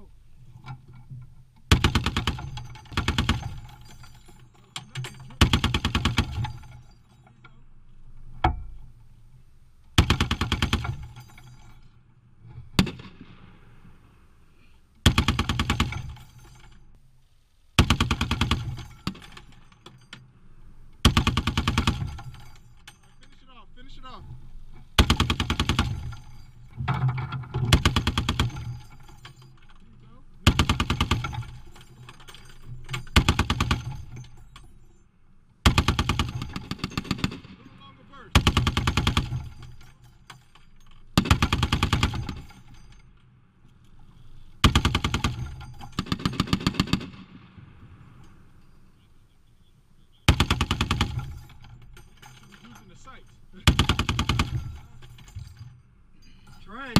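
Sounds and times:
heavy machine gun bursts: 0:01.7 - 0:04.2, 0:05.0 - 0:07.0, 0:10.0 - 0:11.7, 0:15.0 - 0:16.6, 0:17.8 - 0:20.1, 0:20.9 - 0:29.5, 0:30.3 - 0:34.5, 0:35.6 - 0:40.1, 0:40.9 - 0:43.0, 0:44.2 - 0:47.3, 0:50.2 - 0:55.7.

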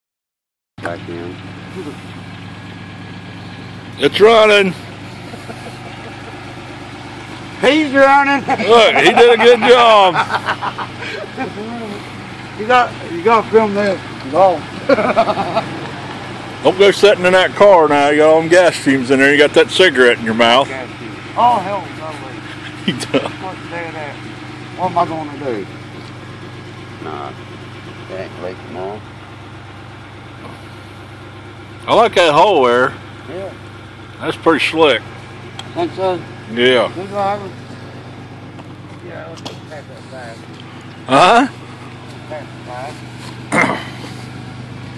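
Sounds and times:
car engine idling: 0:00.8 - 0:44.9.

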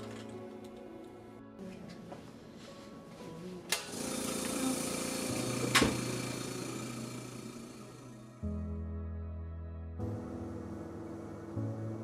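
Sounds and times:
air compressor running: 0:03.7 - 0:08.4.

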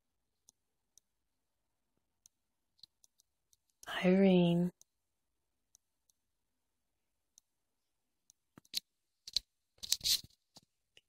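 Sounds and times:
person speaking: 0:03.8 - 0:04.8.

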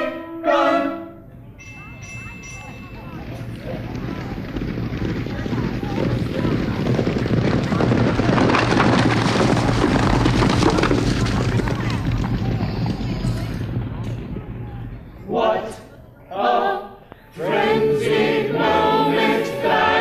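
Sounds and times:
horse race rumbling rush: 0:01.6 - 0:16.2.

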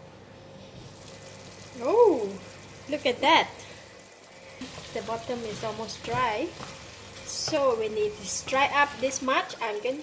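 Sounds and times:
curry simmering hiss: 0:00.9 - 0:10.0.

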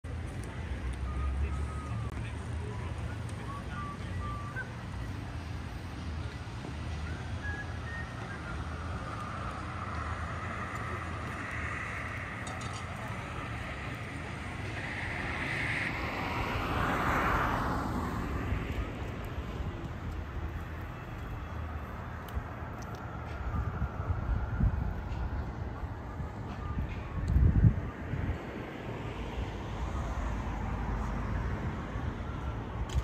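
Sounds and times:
low traffic hum: 0:00.0 - 0:33.0
vehicle passing: 0:00.7 - 0:32.9.

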